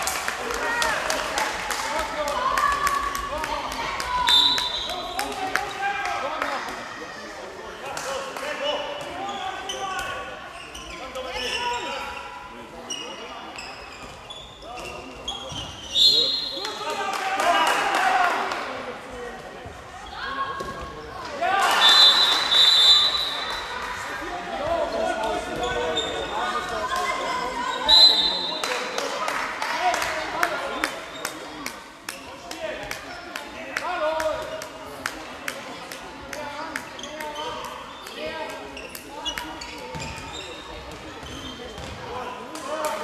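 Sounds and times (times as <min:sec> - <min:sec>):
ball bouncing on court floor: 0:41.2 - 0:42.1.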